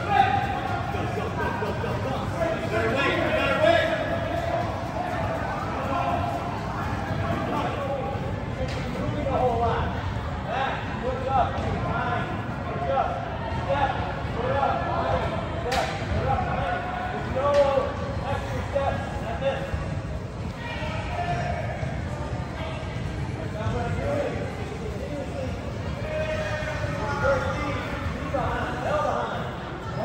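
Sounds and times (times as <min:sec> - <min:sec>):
young players chattering: 0:00.0 - 0:30.0.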